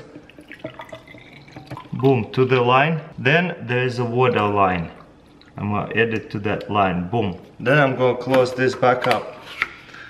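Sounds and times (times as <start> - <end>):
liquid pouring into plastic container: 0.0 - 2.4
liquid dripping: 0.0 - 2.8, 4.2 - 7.5.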